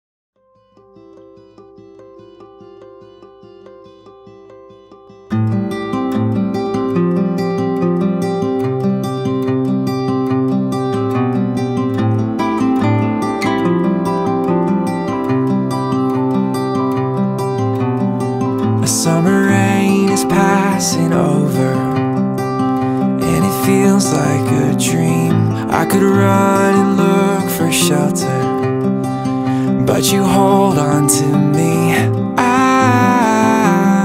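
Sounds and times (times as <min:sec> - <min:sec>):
acoustic guitar strumming: 0:00.4 - 0:34.0
person singing: 0:12.2 - 0:34.0.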